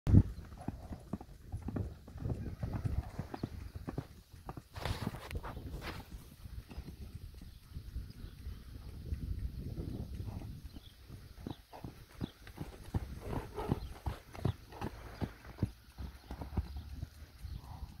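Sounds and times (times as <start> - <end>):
hoofbeats on sand: 0.1 - 18.0.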